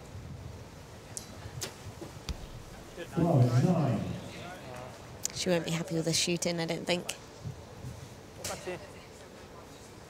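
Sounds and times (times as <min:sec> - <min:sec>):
wind rumble on microphone: 0:00.0 - 0:02.8.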